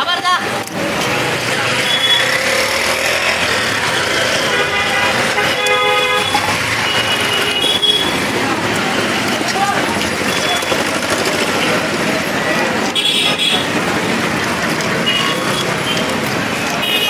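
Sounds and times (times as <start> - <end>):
street traffic: 0.0 - 17.0
vehicle horn honking: 4.4 - 8.2, 16.8 - 17.0.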